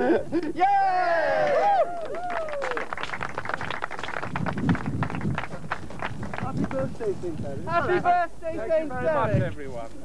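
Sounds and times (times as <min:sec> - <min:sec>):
people cheering: 0:00.8 - 0:05.3
small group clapping: 0:01.4 - 0:07.0.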